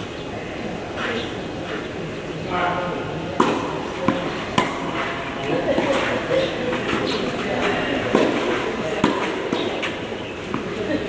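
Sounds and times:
tennis ball struck by rackets: 0:03.4 - 0:10.8.

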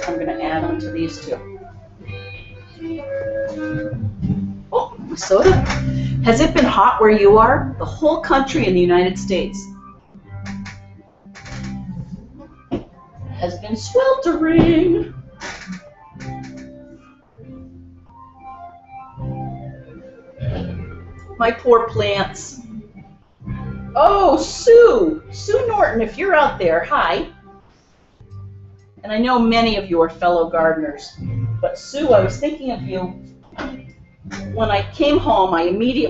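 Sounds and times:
live band music: 0:00.0 - 0:04.4
distant live band with guitar: 0:00.0 - 0:07.7, 0:08.5 - 0:25.4, 0:31.2 - 0:36.0.

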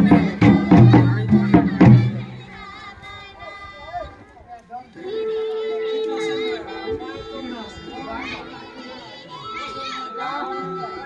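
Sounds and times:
music with long held notes: 0:00.0 - 0:03.4, 0:04.9 - 0:11.0
crowd talking and calling: 0:00.0 - 0:11.0.

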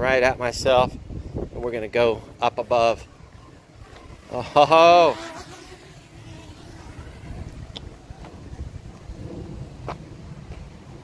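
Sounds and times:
wind buffeting microphone: 0:00.0 - 0:04.5, 0:05.7 - 0:11.0.

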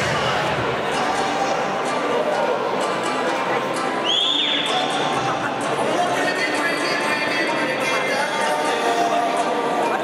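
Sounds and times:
crowd chatter: 0:00.0 - 0:10.0
music in a hall: 0:00.0 - 0:10.0
high whistle-like tone: 0:04.0 - 0:04.9.

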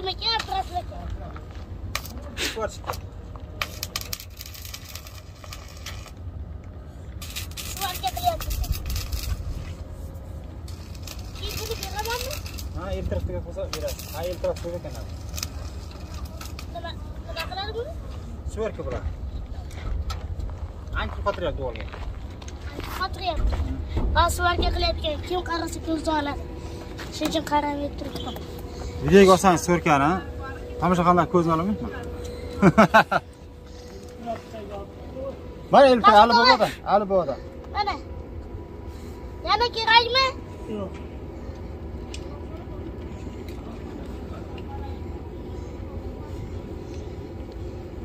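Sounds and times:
voices talking: 0:07.5 - 0:48.0.

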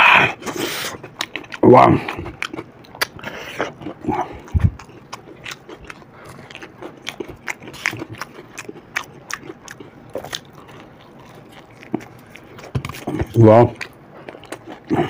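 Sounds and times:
chewing and crunching fried food: 0:00.0 - 0:15.0.

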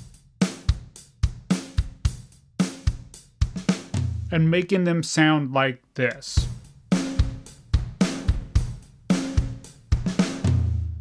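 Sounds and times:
drum kit playing a beat: 0:00.0 - 0:05.3, 0:06.0 - 0:11.0.

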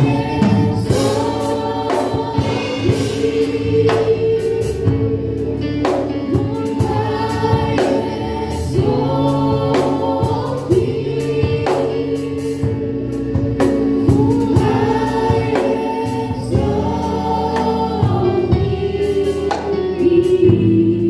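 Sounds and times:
group singing gospel music: 0:00.0 - 0:21.0
instrumental accompaniment: 0:00.0 - 0:21.0.

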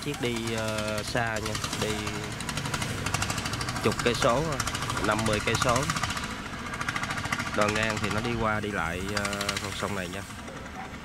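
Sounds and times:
boat engine knocking: 0:00.0 - 0:11.0.

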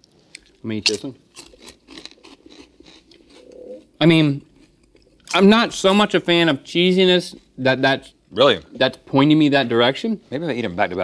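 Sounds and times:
person chewing crunchy snack: 0:00.2 - 0:05.4.

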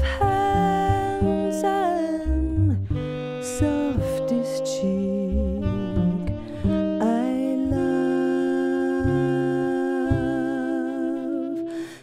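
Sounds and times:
woman singing with vibrato: 0:00.0 - 0:02.8, 0:03.4 - 0:12.0
plucked double bass: 0:00.0 - 0:10.7.

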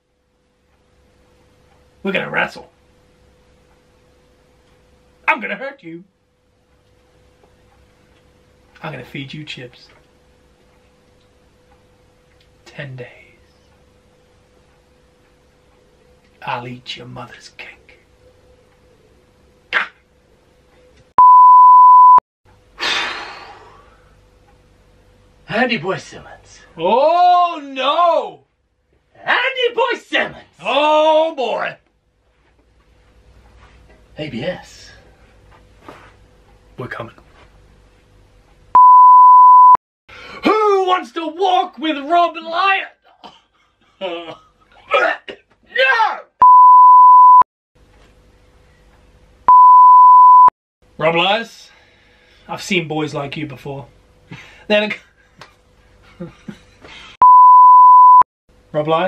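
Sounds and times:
speech: 0:02.0 - 0:02.7, 0:05.3 - 0:06.1, 0:08.8 - 0:10.0, 0:12.7 - 0:13.5, 0:16.4 - 0:18.0, 0:25.5 - 0:28.4, 0:29.2 - 0:31.8, 0:34.2 - 0:35.0, 0:36.8 - 0:37.2, 0:40.4 - 0:43.0, 0:51.0 - 0:51.7, 0:52.5 - 0:53.9, 0:54.7 - 0:55.1, 0:58.7 - 0:59.0
censor bleep: 0:21.2 - 0:22.2, 0:38.8 - 0:39.8, 0:46.4 - 0:47.4, 0:49.5 - 0:50.5, 0:57.2 - 0:58.2.

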